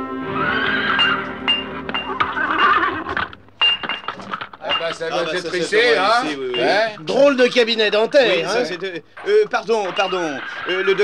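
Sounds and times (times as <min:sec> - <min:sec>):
music: 0:00.0 - 0:02.3
horse whinnying: 0:00.2 - 0:03.4
hammer striking an anvil: 0:01.0 - 0:02.3.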